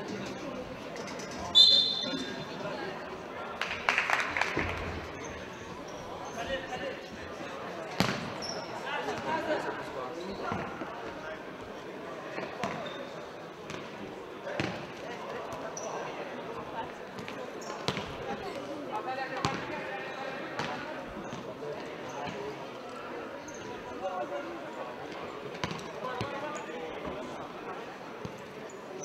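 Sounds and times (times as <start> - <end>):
spectators talking: 0.0 - 29.0.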